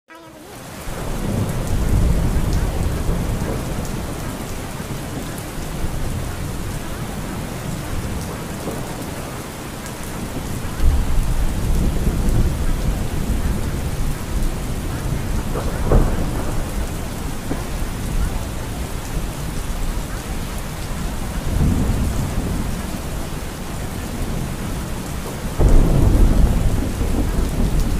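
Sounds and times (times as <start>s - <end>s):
heavy rain: 0.1s - 27.9s
low rolling thunder: 0.6s - 27.9s.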